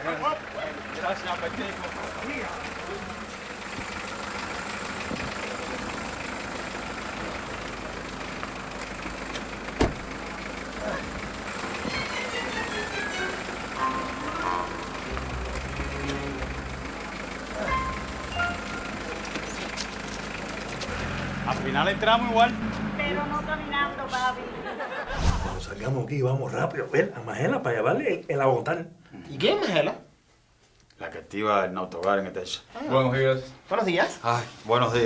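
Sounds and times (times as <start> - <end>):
car engine running: 0.0 - 24.6
light background music: 11.7 - 19.3.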